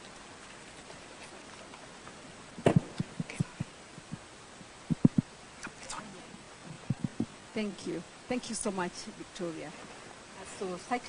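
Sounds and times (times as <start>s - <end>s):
microphone handling thumps: 2.6s - 5.3s, 6.6s - 7.4s.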